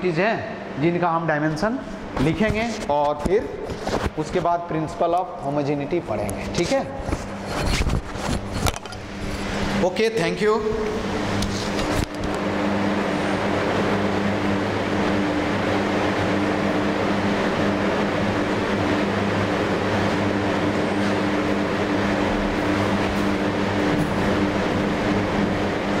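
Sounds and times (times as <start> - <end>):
machine hum: 0.0 - 26.0.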